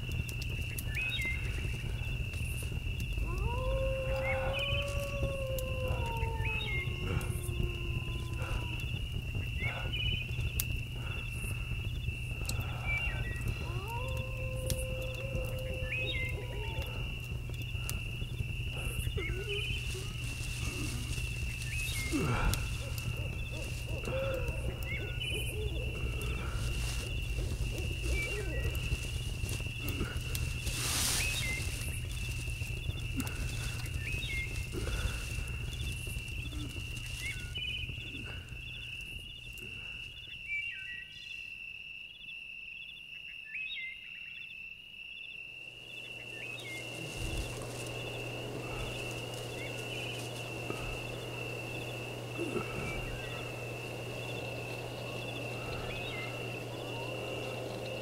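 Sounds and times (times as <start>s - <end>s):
wavering howl-like calls: 0.0s - 41.0s, 45.7s - 58.0s
constant high whine: 0.0s - 41.3s, 45.5s - 58.0s.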